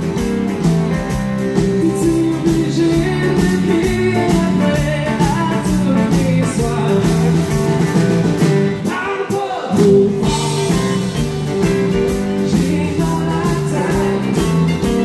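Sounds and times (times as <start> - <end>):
acoustic guitar: 0.0 - 9.1, 9.8 - 15.0
bass: 0.0 - 15.0
drums steady beat: 0.0 - 15.0.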